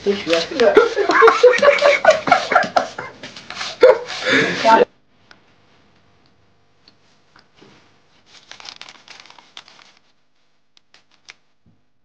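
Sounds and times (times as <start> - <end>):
people laughing: 0.5 - 4.9.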